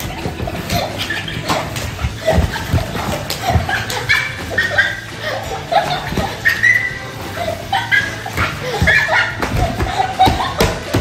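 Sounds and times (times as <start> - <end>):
boys laughing: 0.0 - 11.0
boys yelping and grunting: 0.0 - 11.0.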